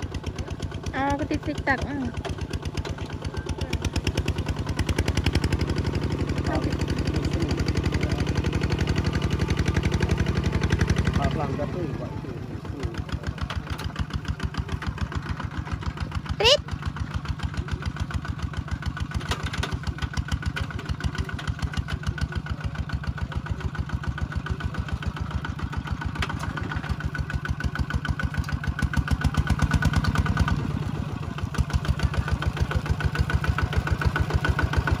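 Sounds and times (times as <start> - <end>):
diesel engine running: 0.0 - 35.0.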